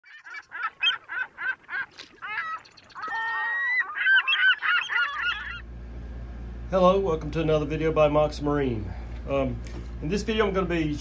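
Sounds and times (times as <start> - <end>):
honking bird calls: 0.0 - 5.7
low steady hum: 0.1 - 11.0.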